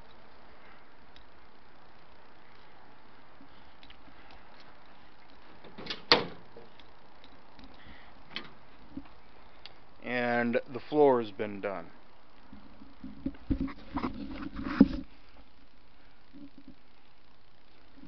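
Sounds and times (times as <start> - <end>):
faint ticks: 0.0 - 5.4, 6.7 - 9.8
faint background hiss: 0.0 - 18.0.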